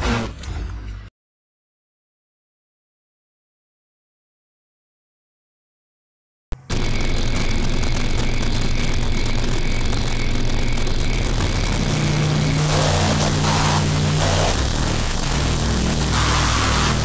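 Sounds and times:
low droning hum: 6.6s - 17.0s
static hiss: 9.2s - 17.0s.

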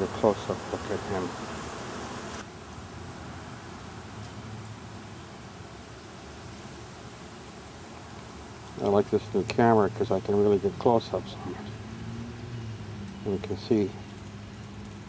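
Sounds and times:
honey bees buzzing: 0.0s - 2.5s.

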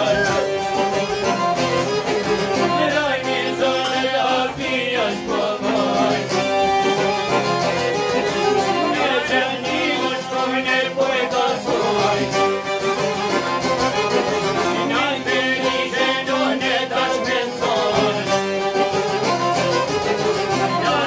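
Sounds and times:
man singing: 0.0s - 0.6s, 1.8s - 6.8s, 8.0s - 12.8s, 14.6s - 19.3s, 19.9s - 21.0s
plucked lutes strumming: 0.0s - 21.0s
violin playing: 0.0s - 21.0s.

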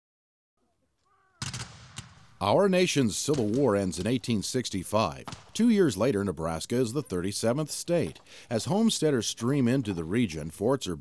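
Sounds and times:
musket volley cracks: 1.4s - 5.9s.

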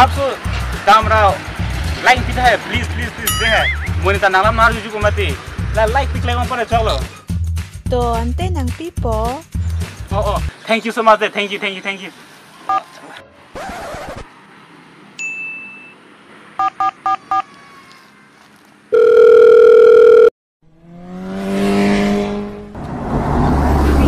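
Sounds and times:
phone keypad beeps: 16.6s - 17.4s, 19.0s - 20.3s.

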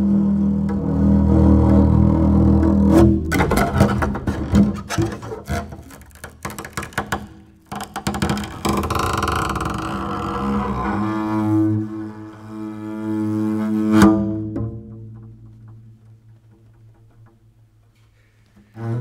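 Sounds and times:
double bass scratchy bowing: 0.0s - 19.0s.

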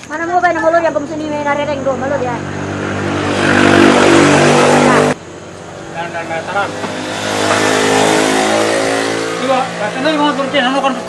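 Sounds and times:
vehicle passing close by: 0.8s - 11.0s.

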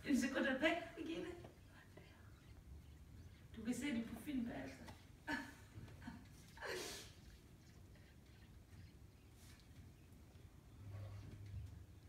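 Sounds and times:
faint low background noise: 0.0s - 12.0s.

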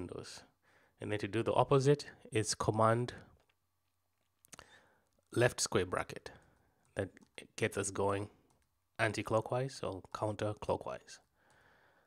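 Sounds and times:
faint breathy sound: 4.6s - 5.1s, 11.3s - 12.0s
person speaking: 5.3s - 11.3s.

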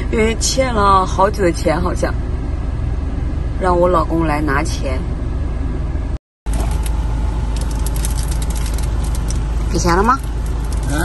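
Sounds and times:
car engine idling: 6.5s - 11.0s.

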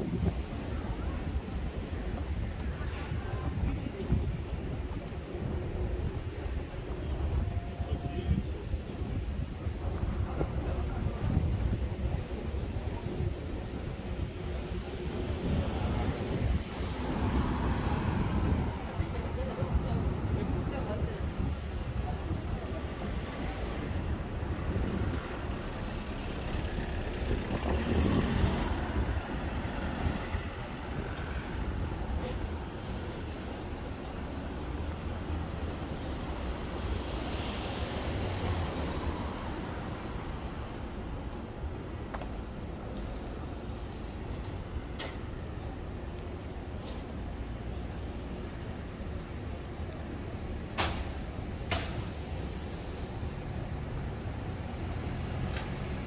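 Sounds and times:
faint traffic hum: 0.0s - 56.0s
wind rumble on microphone: 0.0s - 56.0s.

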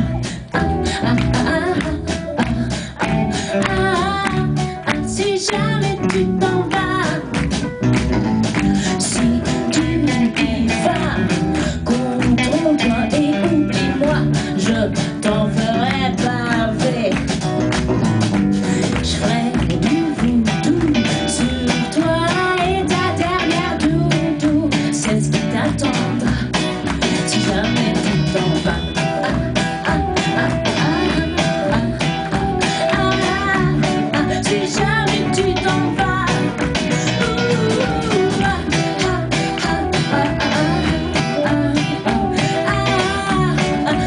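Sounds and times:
bass: 0.0s - 44.0s
drums steady beat: 0.0s - 44.0s
electric guitars: 0.0s - 44.0s
keyboards: 0.0s - 44.0s.

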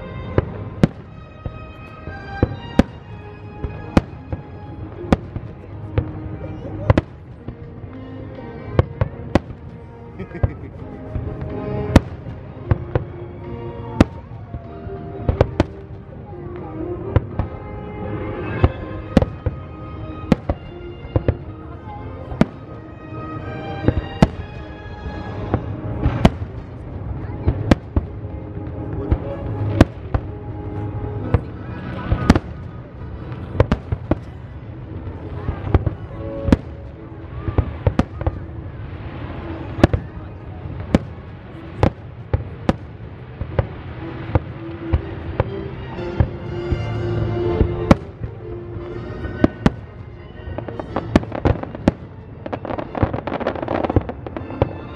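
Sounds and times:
music playing: 0.0s - 54.9s.

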